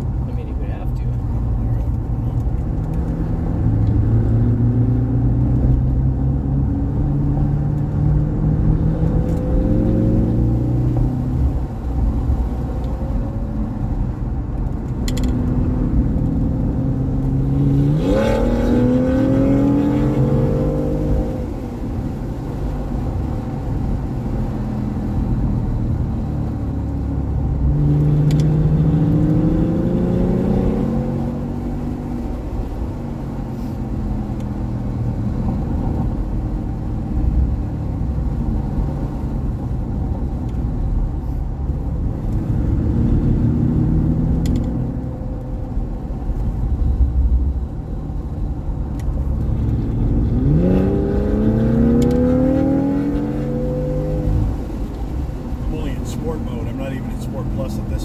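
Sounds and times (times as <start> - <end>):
road and tyre rumble: 0.0 - 58.0
car engine revving: 2.4 - 40.5, 41.6 - 58.0.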